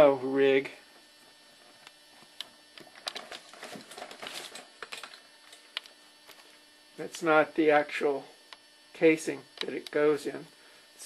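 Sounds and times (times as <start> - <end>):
low electrical hum: 0.0 - 11.0.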